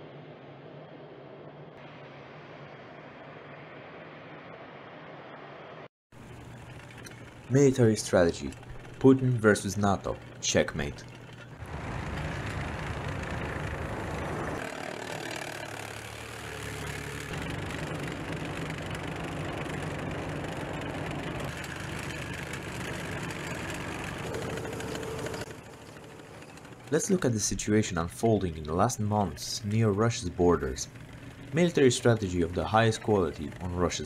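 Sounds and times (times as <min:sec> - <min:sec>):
tracked vehicle engines droning: 0:00.0 - 0:34.0.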